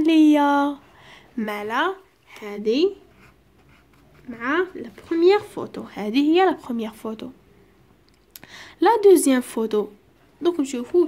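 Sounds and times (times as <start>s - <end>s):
person speaking: 1.4s - 7.4s
pencil scratching on paper: 2.9s - 5.7s.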